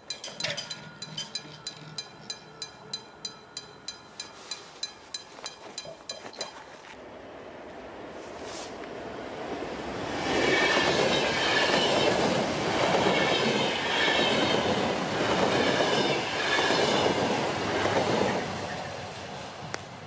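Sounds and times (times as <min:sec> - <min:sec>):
train passing at speed: 0:07.0 - 0:20.0.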